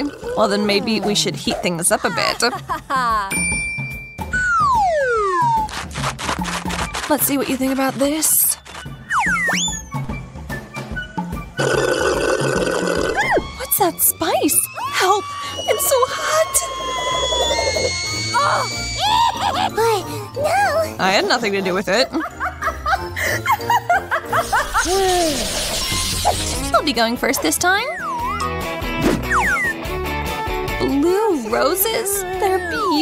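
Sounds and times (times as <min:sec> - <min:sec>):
cheerful background music: 0:00.0 - 0:12.0, 0:13.2 - 0:33.0
woman giggling: 0:00.7 - 0:03.4
slurping through a straw: 0:11.6 - 0:13.3.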